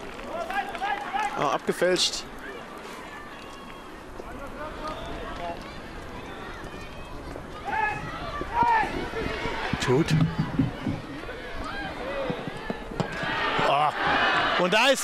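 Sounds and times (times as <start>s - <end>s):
players shouting: 3.2s - 15.0s.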